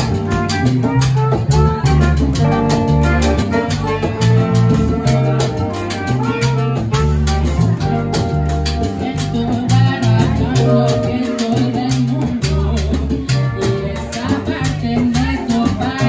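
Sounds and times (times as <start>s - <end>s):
congas and drum kit rhythm: 0.0s - 16.0s
salsa band playing: 0.0s - 16.0s.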